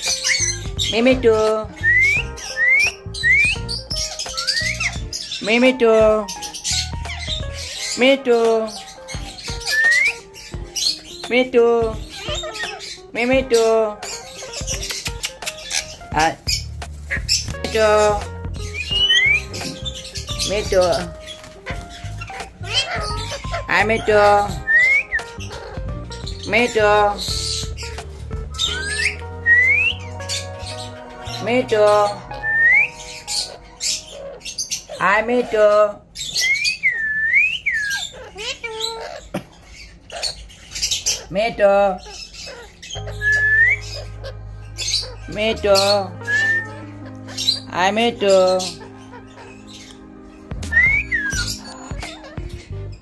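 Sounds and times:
background music: 0:00.0 - 0:36.1, 0:42.8 - 0:53.0
parakeet rising whistles: 0:01.8 - 0:05.1, 0:09.5 - 0:10.3, 0:18.7 - 0:20.2, 0:24.6 - 0:25.8, 0:28.5 - 0:31.0, 0:32.2 - 0:34.4, 0:36.3 - 0:38.0, 0:43.0 - 0:45.3, 0:46.2 - 0:47.7, 0:50.6 - 0:52.4
parakeet harsh hissy call: 0:21.1 - 0:26.3, 0:37.8 - 0:41.3.

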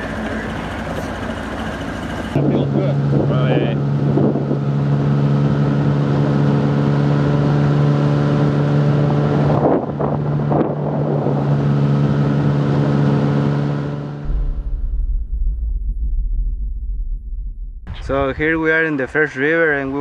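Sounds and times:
motorboat engine running: 0:00.0 - 0:15.3.

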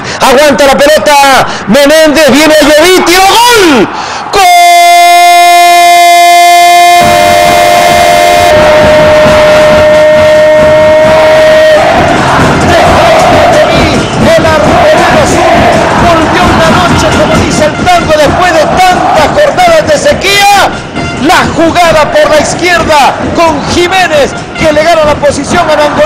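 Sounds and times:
commentator's drawn-out goal cry: 0:00.3 - 0:12.0, 0:12.8 - 0:26.0
crowd roar: 0:02.3 - 0:20.4.

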